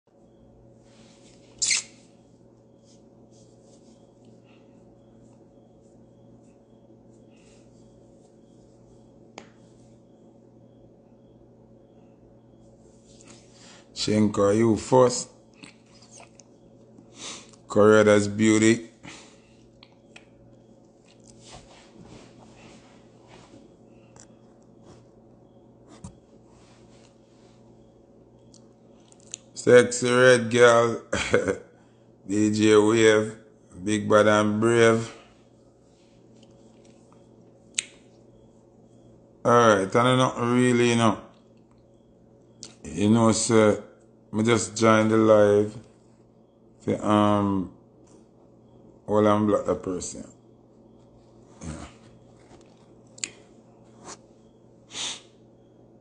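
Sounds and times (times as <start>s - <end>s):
faint low hum: 0.1s - 56.0s.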